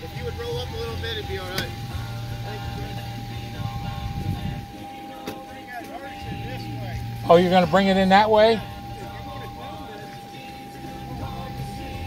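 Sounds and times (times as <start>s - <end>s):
faint distant voices: 0.0s - 12.0s
steady thin tone: 0.1s - 12.0s.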